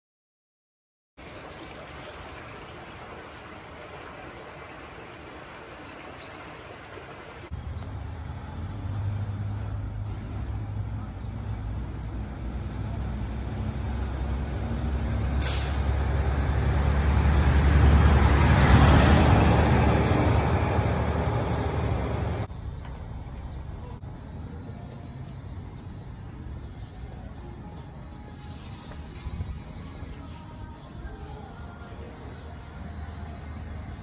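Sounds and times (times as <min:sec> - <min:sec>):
large vehicle engine humming: 0:07.5 - 0:34.0
short sharp hiss: 0:15.4 - 0:16.0.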